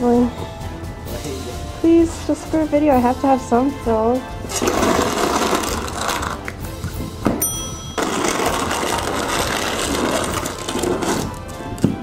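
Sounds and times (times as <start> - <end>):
background music: 0.0 - 12.0
snow shovel scraping through snow: 8.0 - 11.4.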